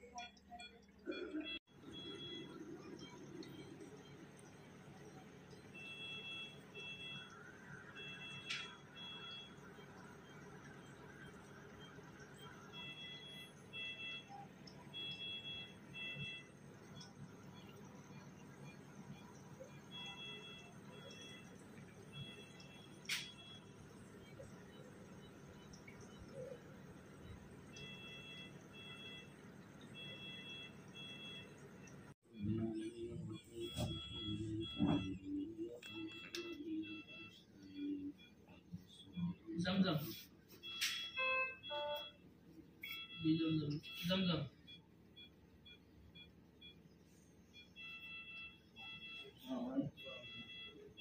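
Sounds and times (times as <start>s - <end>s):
electronic alarm beeping: 0.0s - 42.2s, 42.8s - 51.0s.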